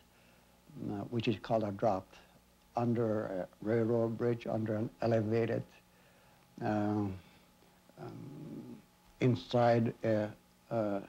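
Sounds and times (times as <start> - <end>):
man hesitating with creaky uhh: 8.0 - 8.8.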